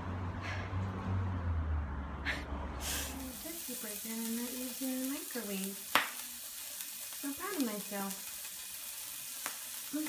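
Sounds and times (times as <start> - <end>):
patty sizzling in oil: 2.8 - 10.0.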